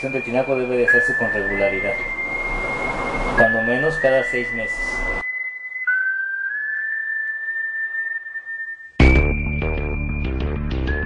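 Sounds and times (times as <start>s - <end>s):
high-pitched whistle-like tone: 0.0s - 11.0s.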